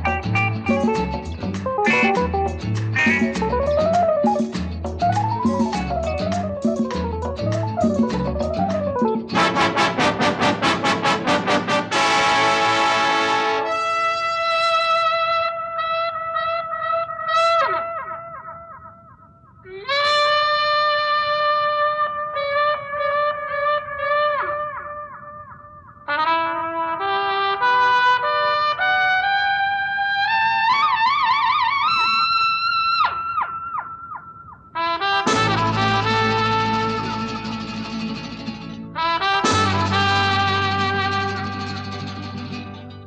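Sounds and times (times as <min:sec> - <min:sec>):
trumpet playing held notes: 0:01.8 - 0:04.2, 0:09.4 - 0:16.3, 0:19.9 - 0:24.8, 0:26.1 - 0:29.8, 0:34.8 - 0:37.7, 0:39.0 - 0:42.6.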